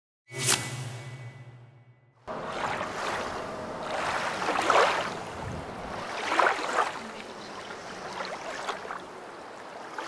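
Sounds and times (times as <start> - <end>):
whoosh with low tone: 0.3 - 4.4
wind: 0.3 - 10.0
river water: 2.3 - 10.0.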